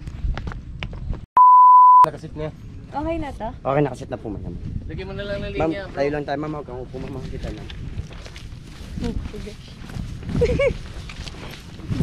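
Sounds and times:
steady electronic beep: 1.4 - 2.1
footsteps crunching on dirt: 4.5 - 12.0.

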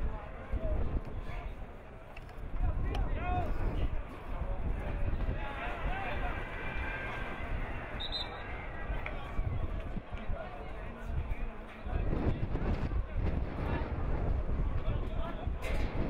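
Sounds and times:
players shouting calls: 5.3 - 9.4.

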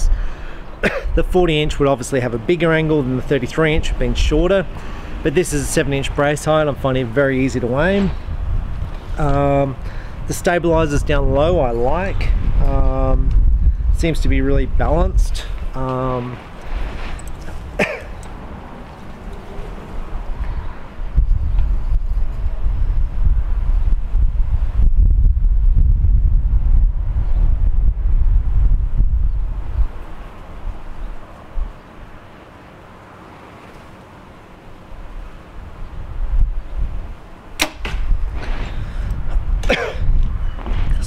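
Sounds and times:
wind rumble on microphone: 0.0 - 32.3, 34.7 - 41.0
bow shot cracking into target: 37.6 - 38.7.

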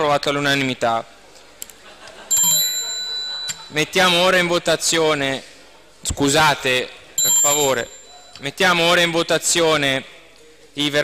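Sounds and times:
low murmur of room: 0.0 - 11.0
small metal bell ringing: 2.3 - 4.2, 7.2 - 8.6.

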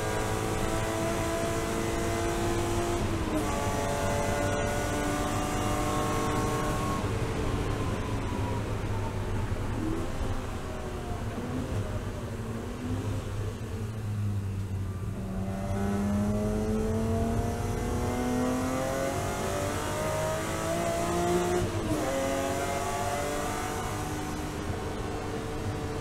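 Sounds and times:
race car engine revving: 0.0 - 8.2, 15.2 - 26.0.

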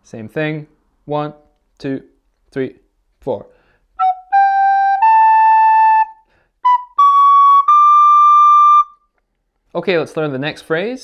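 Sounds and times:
soprano recorder playing: 4.0 - 9.1.

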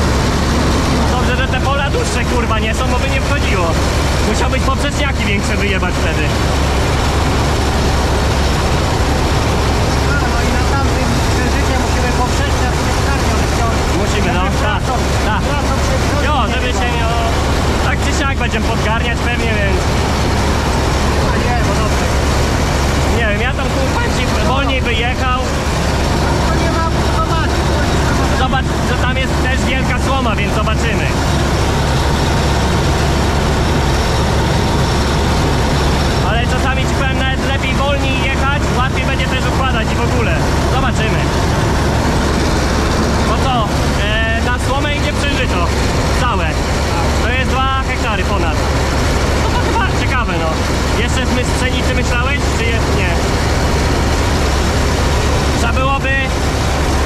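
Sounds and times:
combine harvester engine drone: 0.0 - 57.0.

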